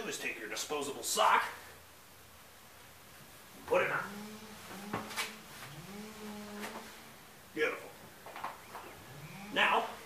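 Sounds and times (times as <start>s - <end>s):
low steady voice hum: 3.6s - 8.1s, 8.9s - 10.0s.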